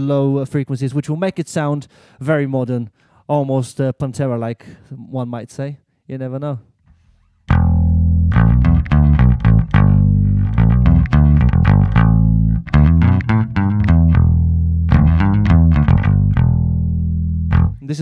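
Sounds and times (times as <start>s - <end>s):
electric bass riff: 7.4s - 18.0s.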